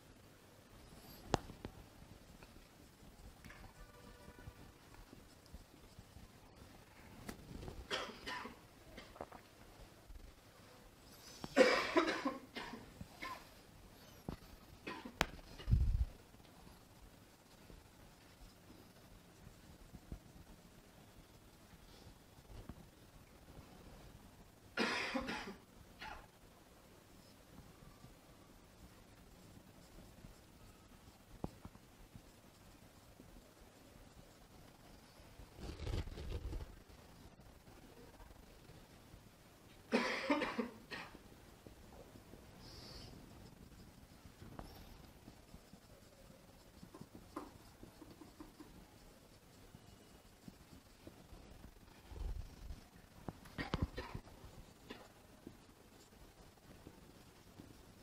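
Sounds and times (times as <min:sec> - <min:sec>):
man coughing: 0:11.6 - 0:13.4, 0:39.9 - 0:41.1.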